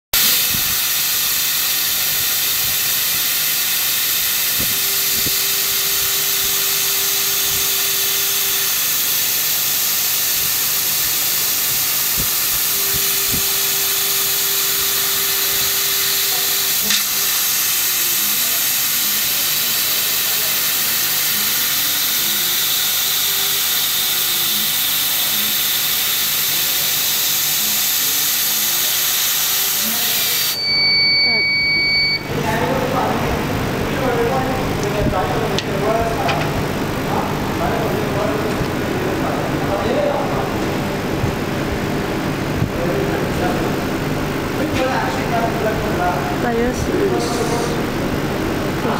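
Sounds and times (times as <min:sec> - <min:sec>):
compressed air hissing through nozzle: 0:00.2 - 0:30.6
faint motor whine: 0:00.2 - 0:48.9.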